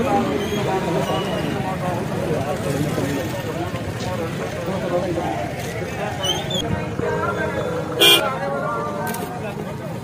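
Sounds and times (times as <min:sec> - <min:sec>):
crowd chatter: 0:00.0 - 0:10.0
vehicle horn toot: 0:07.9 - 0:08.3.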